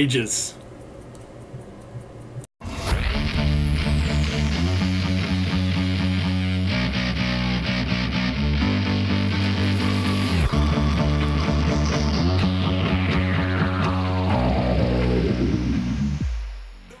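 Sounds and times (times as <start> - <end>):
rhythmic music: 0.8 - 17.0.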